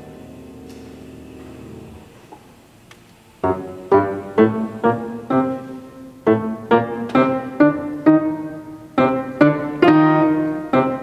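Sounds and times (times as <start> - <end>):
grand piano chord: 0.0 - 2.2, 3.4 - 11.0.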